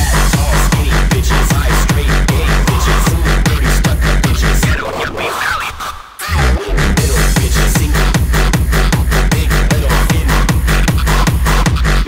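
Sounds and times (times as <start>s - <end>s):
distorted kick drum: 0.0s - 4.8s, 6.4s - 12.0s
reverse bassline: 0.0s - 5.0s, 6.2s - 12.0s
hardstyle dance music: 0.0s - 12.0s.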